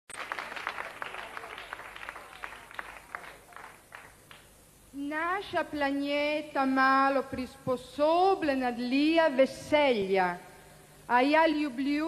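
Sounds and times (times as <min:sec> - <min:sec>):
studio audience applauding: 0:00.1 - 0:04.5.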